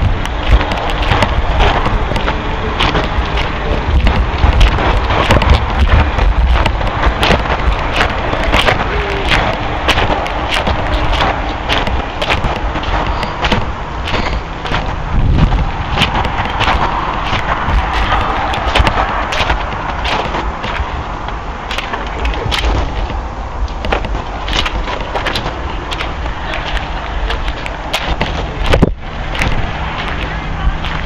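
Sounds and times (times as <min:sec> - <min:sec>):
footsteps crunching on gravel: 0:00.0 - 0:31.0
wind buffeting microphone: 0:00.0 - 0:31.0.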